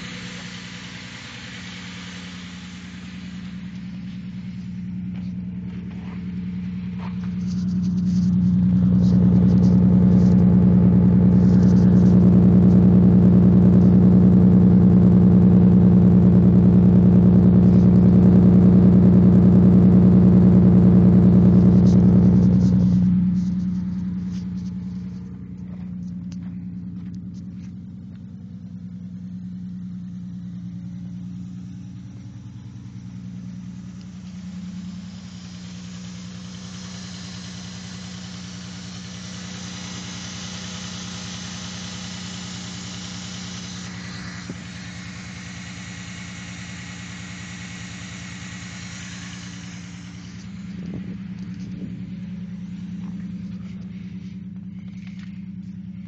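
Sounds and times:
high hiss: 0.0s - 10.3s, 30.9s - 51.6s
car engine idling: 0.0s - 56.0s.

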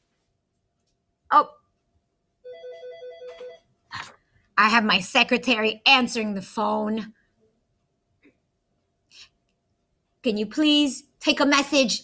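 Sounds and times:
telephone ringing: 2.4s - 3.7s.

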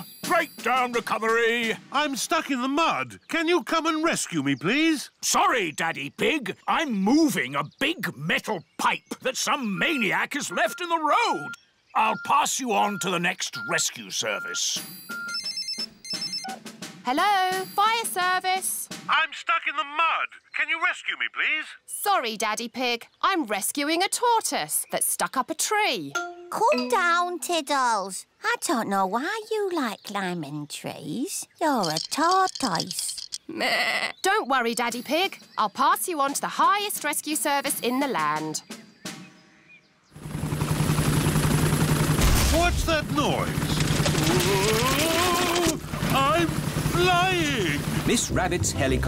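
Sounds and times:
mobile phone electronic ringtone: 9.8s - 12.4s, 14.4s - 16.6s
cartoon helicopter rotor chopping: 40.2s - 48.6s.

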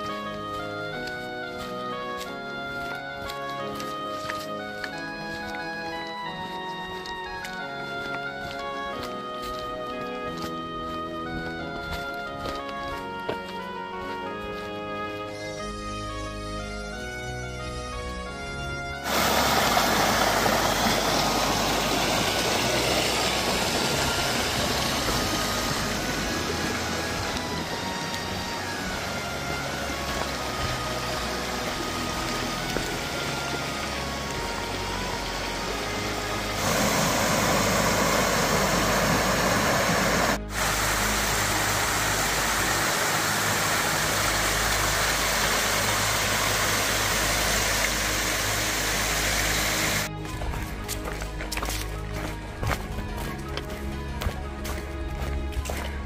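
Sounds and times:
faint background music: 0.0s - 56.0s
creek splashing over rocks: 19.0s - 50.1s.

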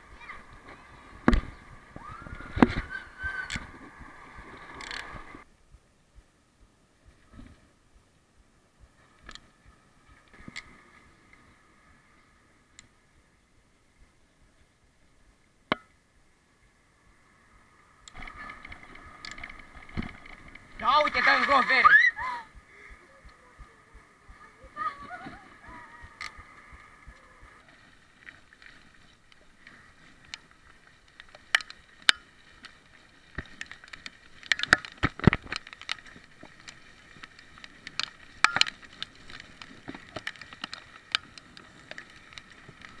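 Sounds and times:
bicycle clicks and rattles: 4.8s - 5.1s, 30.2s - 43.0s.

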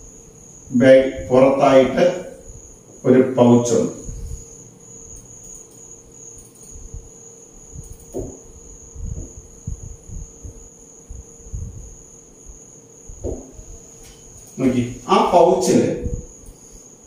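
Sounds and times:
steady high-pitched whine: 0.0s - 17.0s.

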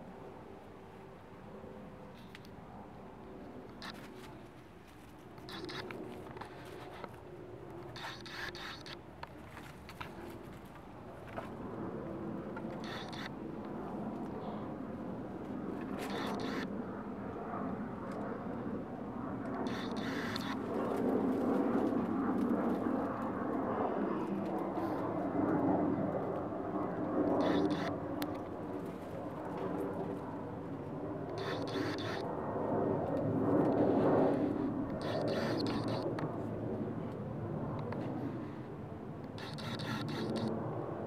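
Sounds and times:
distant engine drone: 0.0s - 41.0s.

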